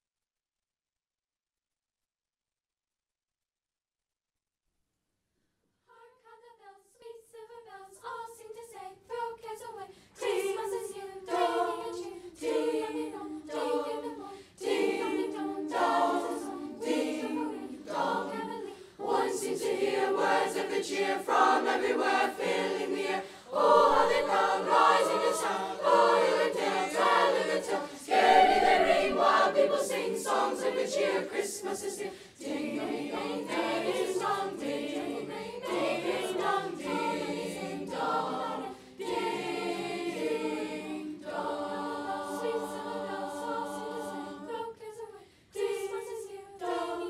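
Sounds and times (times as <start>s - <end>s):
children's choir singing: 5.9s - 47.0s.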